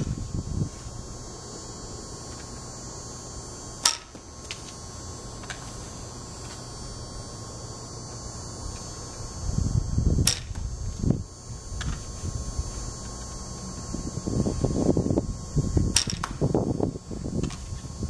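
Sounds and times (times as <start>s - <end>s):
steady low hum: 0.0s - 18.0s
arrows clicking against bow: 3.8s - 4.8s.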